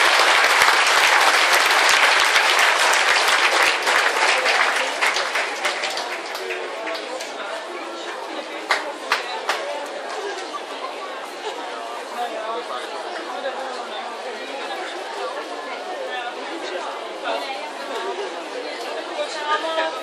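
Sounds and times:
crowd chattering: 0.0s - 20.0s.

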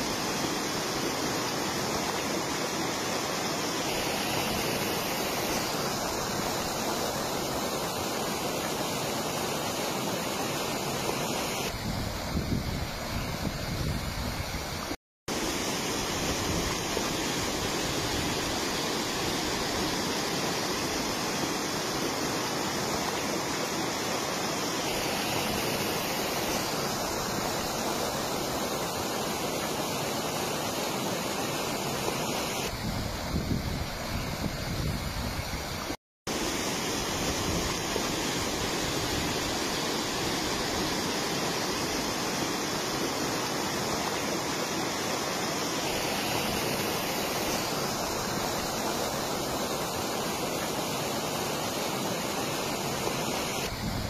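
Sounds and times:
flood water rushing: 0.0s - 54.0s.

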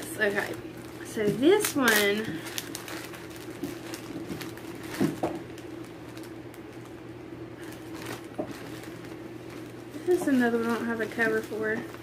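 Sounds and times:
steady low hum: 0.0s - 12.0s
fabric handling rustles: 7.6s - 12.0s.

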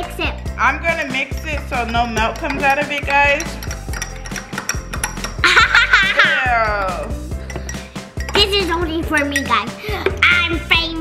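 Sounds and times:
background music: 0.0s - 11.0s
girl laughing high-pitched: 5.4s - 7.0s.

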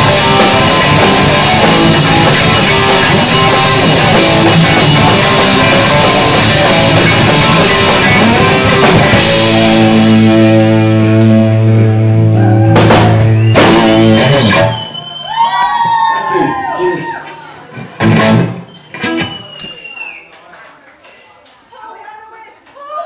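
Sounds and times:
rock band held chord: 0.0s - 14.8s, 17.9s - 19.4s
crowd shouting and cheering: 0.0s - 20.7s.

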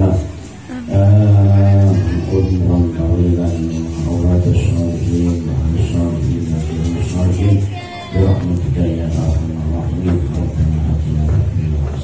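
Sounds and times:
man chanting a prayer: 0.0s - 12.0s.

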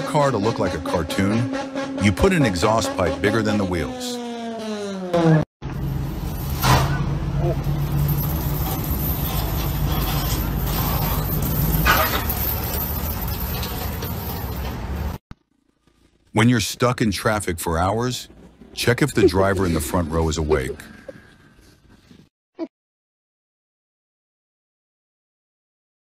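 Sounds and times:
car engine revving down: 0.0s - 13.4s
low vehicle engine drone: 0.0s - 22.0s.

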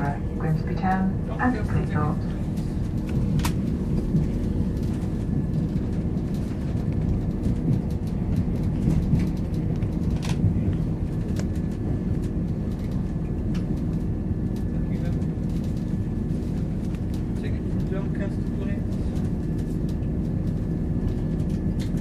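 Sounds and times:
train diesel engines rumbling: 0.0s - 22.0s
train wheels on rails: 0.0s - 22.0s.

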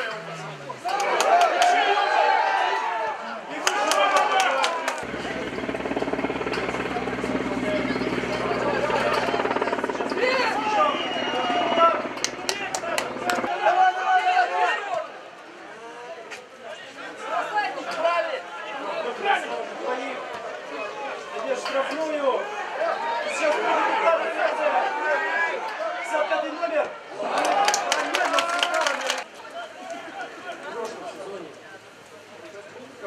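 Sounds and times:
players and crowd shouting: 0.8s - 5.1s, 5.8s - 16.2s, 16.8s - 31.2s
low buzzing drone: 5.0s - 13.5s.

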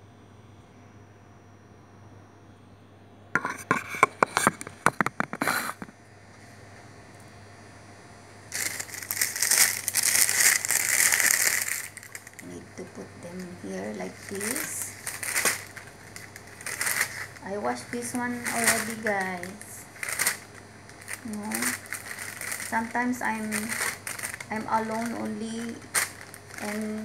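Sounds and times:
plastic bag crinkling: 8.5s - 27.0s.

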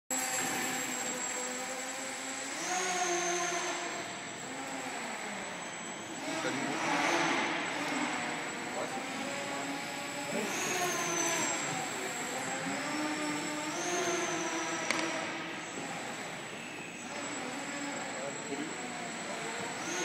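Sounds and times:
model hovercraft propeller motor: 0.1s - 20.0s.

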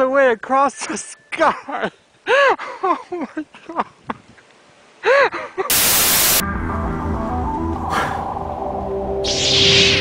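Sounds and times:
television static hiss: 4.5s - 6.4s.

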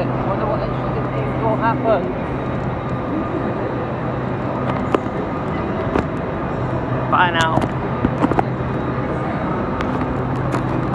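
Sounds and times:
low hum from trains: 0.0s - 10.9s.

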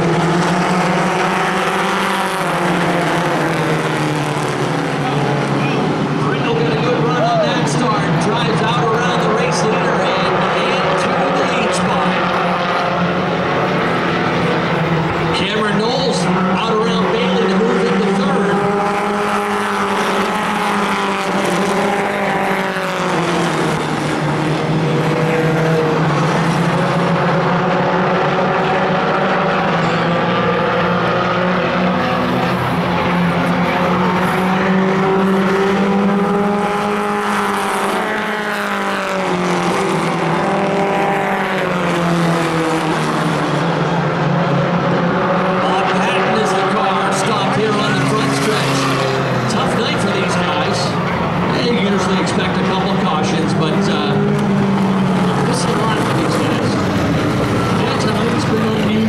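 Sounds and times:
race car engines: 0.0s - 59.0s.

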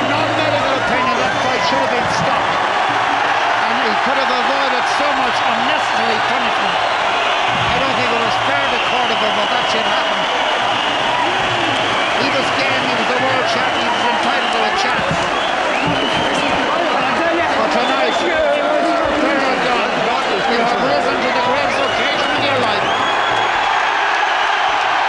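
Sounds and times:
arena crowd cheering and shouting: 0.0s - 25.0s.

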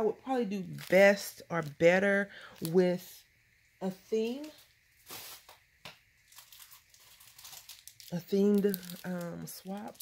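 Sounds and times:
paper rustling and crinkling: 6.3s - 10.0s.

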